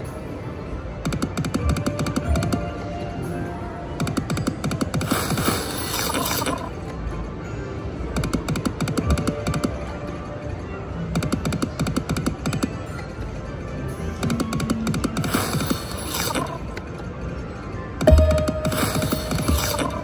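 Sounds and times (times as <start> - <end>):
slot machine ticking and jingling: 1.0 - 3.2, 3.9 - 7.0, 8.1 - 20.0
electronic game music: 1.0 - 7.0, 8.2 - 10.2, 11.0 - 13.2, 14.1 - 16.9, 17.9 - 20.0.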